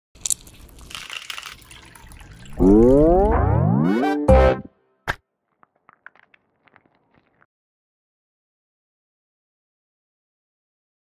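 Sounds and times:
rising tone sweeping up: 2.6s - 4.7s.

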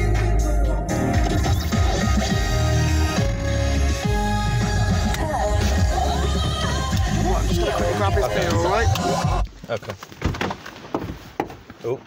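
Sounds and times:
music on car radio: 0.0s - 9.5s.

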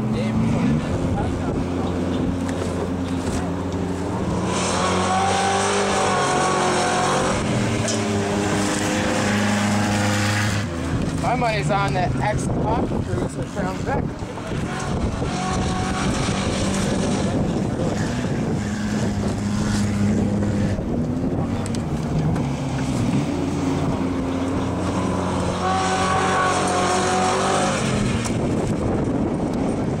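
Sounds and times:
car engine running hard: 0.0s - 30.0s.

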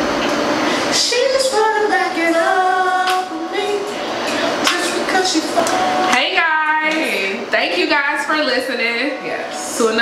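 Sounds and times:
women's voices overlapping: 6.1s - 10.0s.

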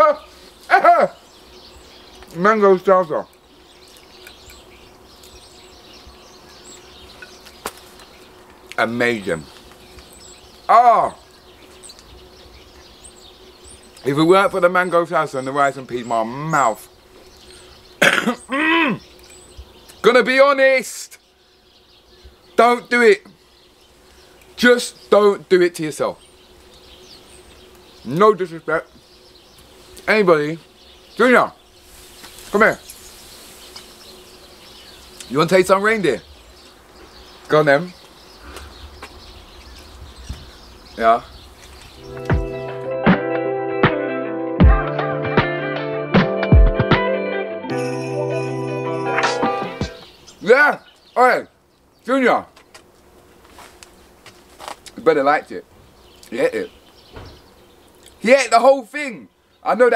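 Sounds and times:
small bird chirps: 0.0s - 20.1s, 25.9s - 42.3s, 49.9s - 52.8s, 55.9s - 58.7s
faint outdoor background noise: 0.0s - 42.9s, 48.6s - 59.9s.

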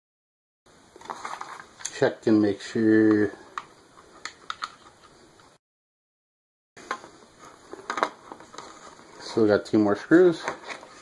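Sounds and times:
plastic case being handled: 1.0s - 1.9s, 6.8s - 9.5s, 10.1s - 11.0s.

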